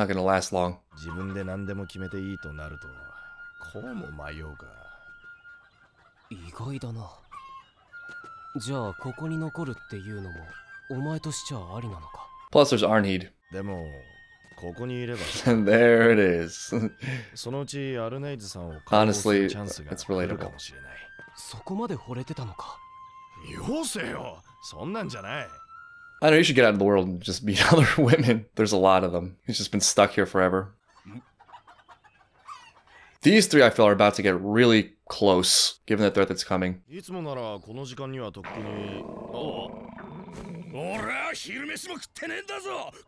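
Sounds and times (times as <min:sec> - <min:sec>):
man's voice: 0:15.1 - 0:17.2, 0:18.8 - 0:20.6, 0:37.0 - 0:39.8, 0:40.7 - 0:43.0
man asking a question: 0:18.3 - 0:20.6, 0:35.2 - 0:39.9, 0:40.7 - 0:43.0
chicken clucking and squawking: 0:30.9 - 0:33.2
man answering: 0:38.4 - 0:39.9, 0:40.7 - 0:43.0.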